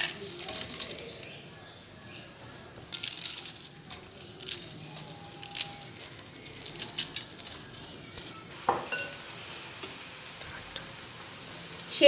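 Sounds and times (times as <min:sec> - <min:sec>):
dry noodles crackling and snapping: 0:00.0 - 0:01.3, 0:02.9 - 0:08.3.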